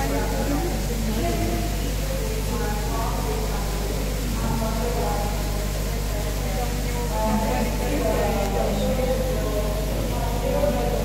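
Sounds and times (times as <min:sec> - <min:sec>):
people talking indistinctly: 0:00.0 - 0:11.0
steady low hum: 0:00.0 - 0:11.0.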